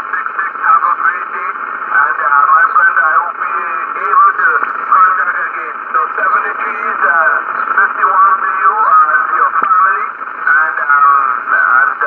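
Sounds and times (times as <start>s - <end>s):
man's voice over shortwave radio: 0.0s - 12.0s.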